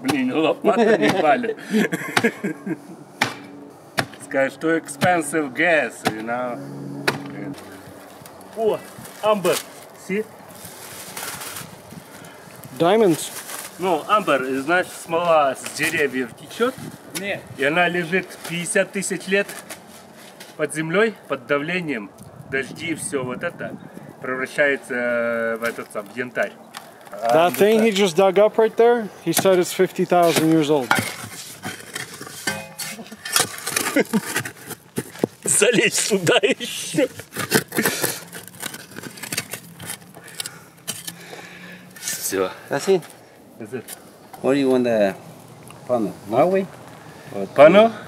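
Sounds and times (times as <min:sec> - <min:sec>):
man talking: 0:00.0 - 0:01.8, 0:04.2 - 0:06.6, 0:20.6 - 0:30.9, 0:35.5 - 0:37.1, 0:42.2 - 0:45.2, 0:47.3 - 0:48.0
digging tool scraping soil and stones: 0:29.2 - 0:41.3, 0:41.9 - 0:42.8.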